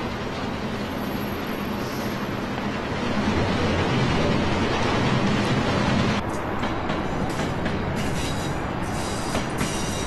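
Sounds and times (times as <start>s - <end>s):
train carriage rumble: 0.0s - 10.0s
hiss: 8.0s - 10.0s.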